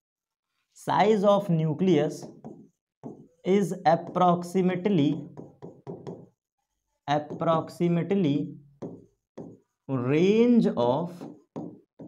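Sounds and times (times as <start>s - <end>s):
man speaking: 0.8s - 2.4s, 3.4s - 5.4s, 7.1s - 8.6s, 9.9s - 11.3s
pen tip knocking on glass: 2.2s - 3.3s, 5.0s - 6.4s, 8.8s - 9.6s, 11.2s - 12.0s.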